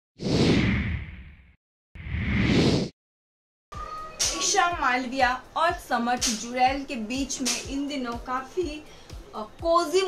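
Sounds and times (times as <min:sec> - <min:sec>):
whoosh sound effect: 0:02.0 - 0:02.9.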